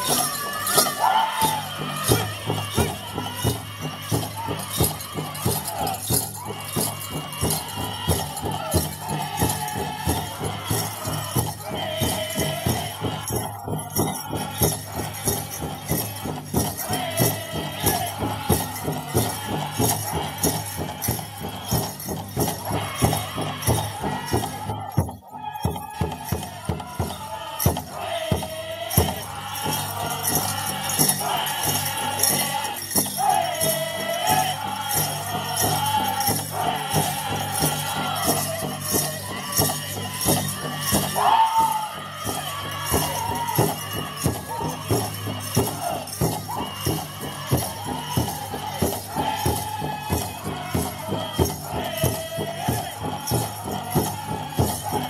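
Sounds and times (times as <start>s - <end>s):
big drum fast double beat: 0.0s - 55.0s
men singing in unison: 0.0s - 55.0s.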